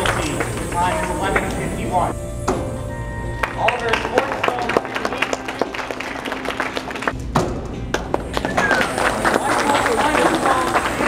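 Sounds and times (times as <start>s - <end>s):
people talking in a hall: 0.0s - 7.1s, 8.3s - 11.0s.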